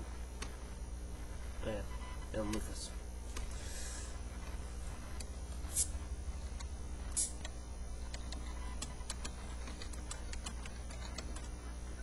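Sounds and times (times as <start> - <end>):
steady low hum: 0.0 - 12.0
short high hiss: 7.1 - 7.4.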